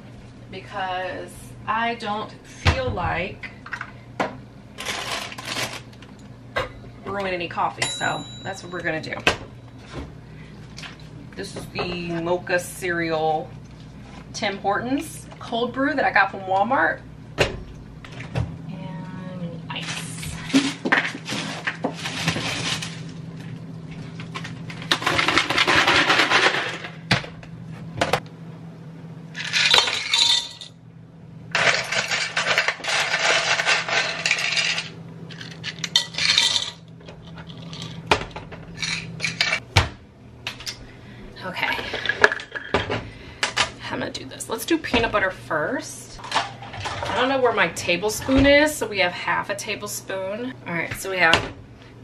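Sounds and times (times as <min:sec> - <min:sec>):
low steady hum: 0:00.0 - 0:52.0
rummaging and clattering: 0:04.8 - 0:05.9, 0:19.8 - 0:23.1, 0:31.6 - 0:39.6.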